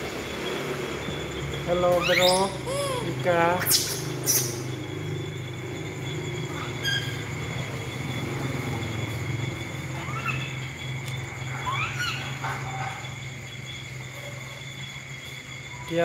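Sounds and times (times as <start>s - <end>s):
crickets trilling: 0.0s - 16.0s.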